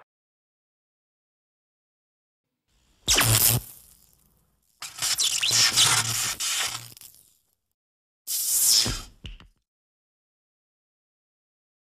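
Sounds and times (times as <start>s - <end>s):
short squealing whine: 3.1s - 3.7s.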